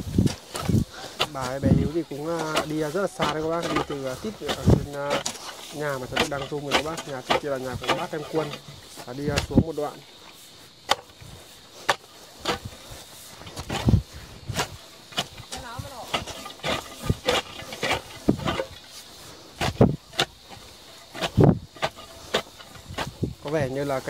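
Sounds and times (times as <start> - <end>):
knocks and thuds of pole into soil: 10.8 - 12.8.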